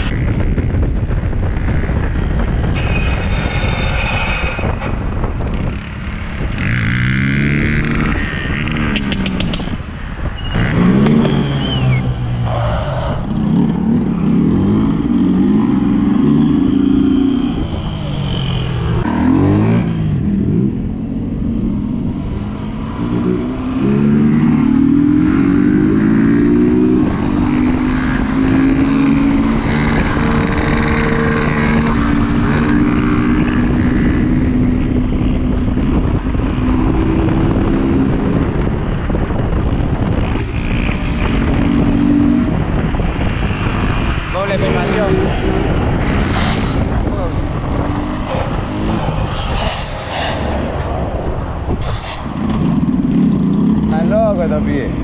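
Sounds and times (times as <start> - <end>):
motorcycle engines revving: 0.0 - 55.0.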